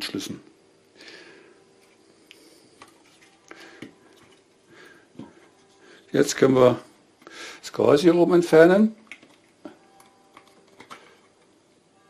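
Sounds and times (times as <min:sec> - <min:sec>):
soft plastic rubbing: 0:01.8 - 0:04.6.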